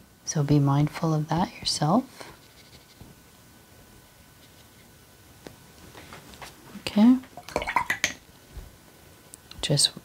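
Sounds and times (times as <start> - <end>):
brush rinsed in water jar: 7.4 - 8.2.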